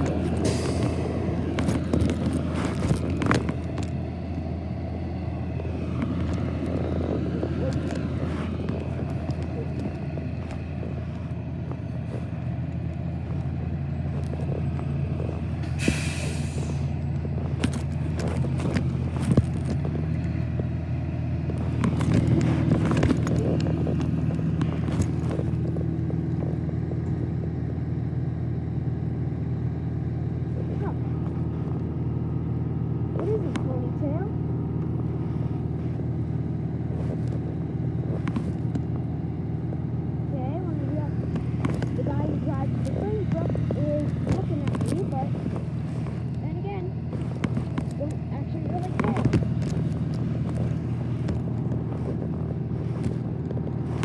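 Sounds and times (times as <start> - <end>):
microphone clicks and rubbing: 0.0 - 4.0, 5.7 - 16.0, 16.6 - 20.7, 21.4 - 27.4, 35.2 - 39.8, 40.4 - 54.0
vehicle engine running: 0.0 - 54.0.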